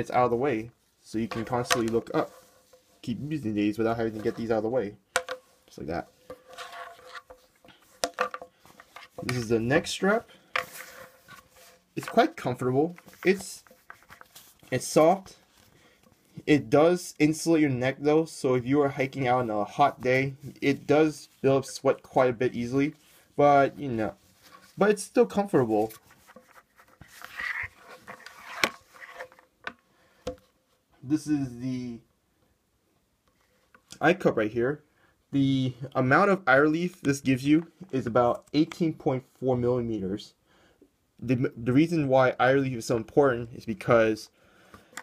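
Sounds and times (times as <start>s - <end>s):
strap rustling: 0.0s - 16.5s, 18.7s - 30.9s
binoculars clicking and knocking: 5.2s - 5.4s, 6.3s - 9.5s.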